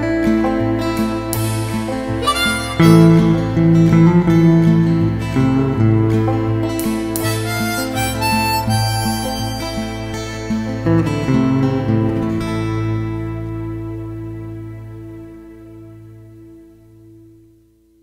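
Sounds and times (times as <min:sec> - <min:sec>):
harmonica melody: 0:00.0 - 0:15.0
acoustic guitar: 0:00.0 - 0:18.0
bass line: 0:00.0 - 0:18.0.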